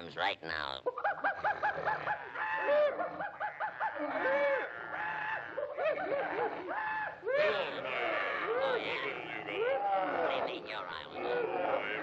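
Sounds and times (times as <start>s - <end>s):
cartoon animal voices chattering: 0.0s - 12.0s.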